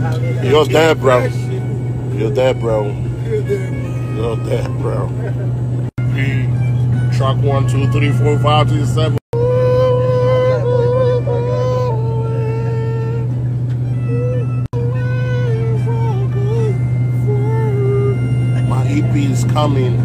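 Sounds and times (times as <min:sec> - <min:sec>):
jet cabin drone: 0:00.0 - 0:20.0.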